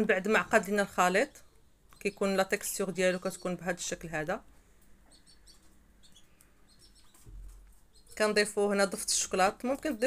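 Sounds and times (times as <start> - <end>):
high bird chirps: 5.0 - 8.3.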